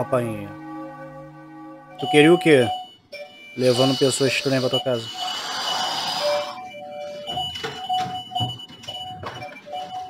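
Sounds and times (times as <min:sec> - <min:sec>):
soft background music: 0:00.0 - 0:05.4, 0:06.0 - 0:10.0
doorbell ringing: 0:02.0 - 0:10.0.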